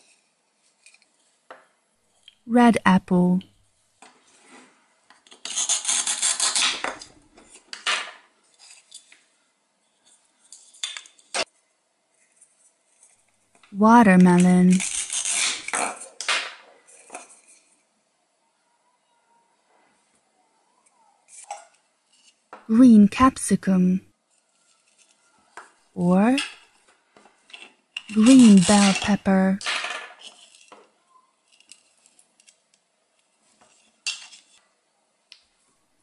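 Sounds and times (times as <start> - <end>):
velcro ripping: 5.5 - 6.8, 14.7 - 15.7.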